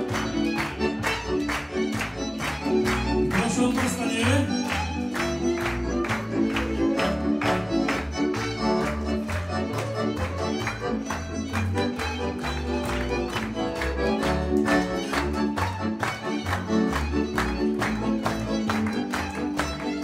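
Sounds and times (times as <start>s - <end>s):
fiddle: 0.0s - 20.0s
live band playing folk dance music: 0.0s - 20.0s
people clapping along: 0.0s - 20.0s.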